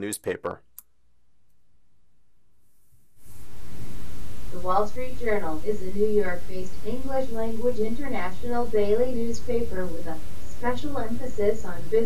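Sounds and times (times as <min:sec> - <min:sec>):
steady hiss: 0:03.1 - 0:12.0.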